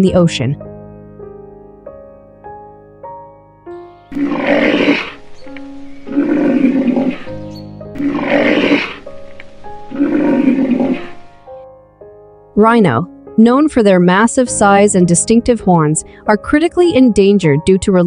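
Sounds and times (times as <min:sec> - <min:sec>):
soft piano music: 0:00.0 - 0:18.0
rhino roaring call: 0:04.1 - 0:11.5.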